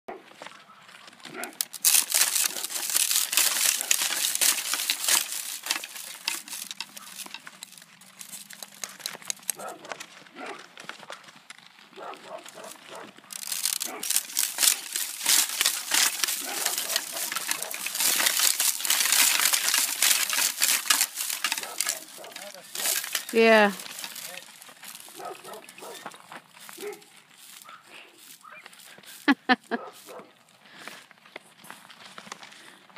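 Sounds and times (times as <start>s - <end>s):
dog barking: 0.1s - 0.3s, 1.3s - 1.6s, 9.6s - 10.7s, 12.0s - 13.2s, 13.8s - 14.1s, 25.1s - 26.1s, 26.8s - 28.7s, 29.8s - 30.4s
frozen leaves crackling: 0.3s - 32.8s
faint rustling: 1.3s - 31.0s.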